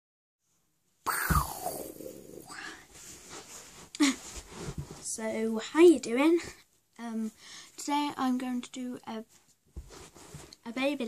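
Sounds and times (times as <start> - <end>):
rustling and bumping on bed: 3.0 - 5.2, 9.7 - 10.5.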